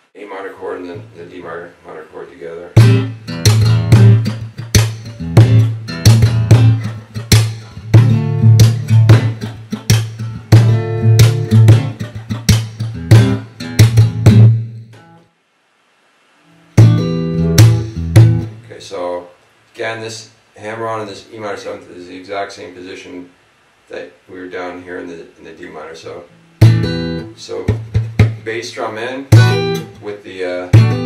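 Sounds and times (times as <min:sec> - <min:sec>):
percussive slaps on guitar strings: 0:02.8 - 0:15.1, 0:16.8 - 0:18.6, 0:26.6 - 0:27.0, 0:27.7 - 0:28.4, 0:29.3 - 0:30.0, 0:30.8 - 0:31.0
fingerstyle acoustic guitar: 0:02.8 - 0:15.2, 0:16.5 - 0:18.6, 0:26.5 - 0:28.4, 0:29.3 - 0:30.1, 0:30.7 - 0:31.0.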